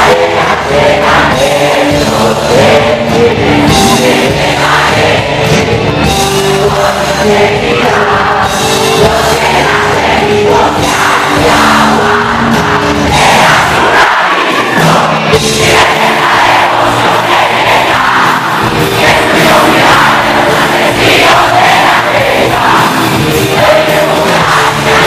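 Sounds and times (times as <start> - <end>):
crowd voices: 0.0 - 25.0
live rock band playing: 0.0 - 25.0.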